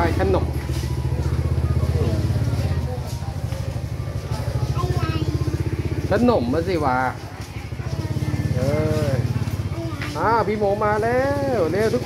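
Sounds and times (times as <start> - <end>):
small engine idling: 0.0 - 12.0.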